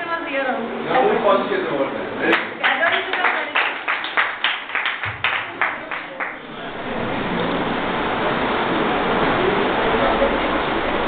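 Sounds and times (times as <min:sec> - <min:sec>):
people clapping: 0:02.3 - 0:06.6
woman speaking into a microphone: 0:02.6 - 0:03.8.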